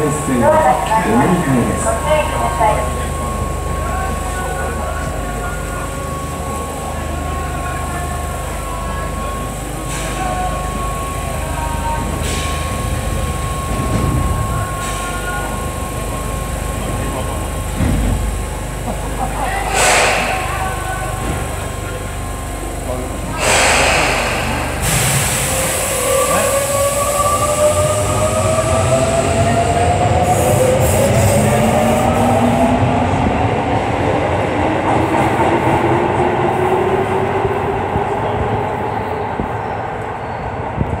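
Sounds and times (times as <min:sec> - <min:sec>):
wheels rumbling on rails: 0:00.0 - 0:41.0
air hiss: 0:19.7 - 0:20.6, 0:23.4 - 0:25.9.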